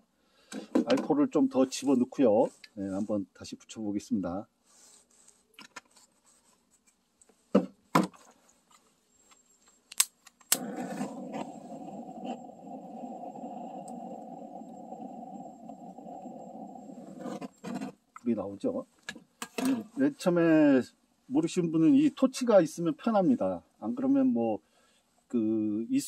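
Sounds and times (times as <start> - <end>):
gas torch igniting click: 9.9 - 10.7.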